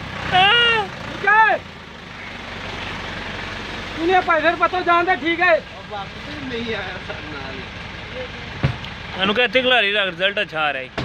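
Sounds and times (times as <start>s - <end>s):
engine idling: 0.0s - 11.0s.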